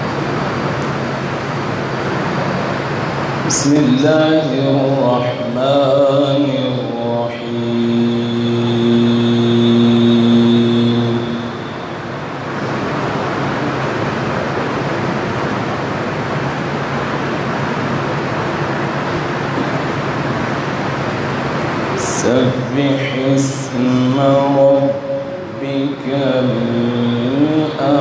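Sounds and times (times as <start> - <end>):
loud rushing noise: 0.0 - 28.0
man chanting: 3.5 - 11.7, 22.0 - 28.0.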